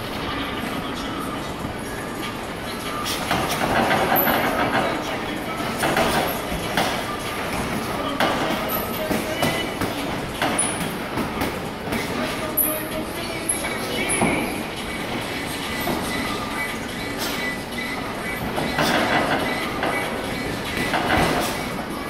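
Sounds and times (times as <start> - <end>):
noisy background: 0.0 - 22.0
high sneaker squeaks: 12.0 - 21.8.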